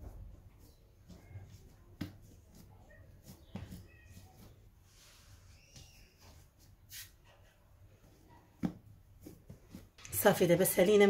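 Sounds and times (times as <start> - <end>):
hands shaping bread dough: 0.0 - 11.0.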